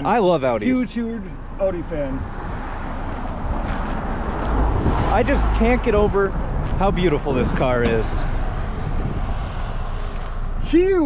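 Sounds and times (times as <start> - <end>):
wind buffeting microphone: 2.1 - 11.0
footsteps on gravel: 3.1 - 5.1.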